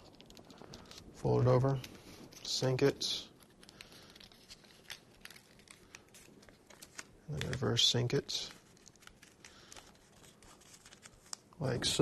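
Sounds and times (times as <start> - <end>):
paper money crinkling: 0.0 - 12.0.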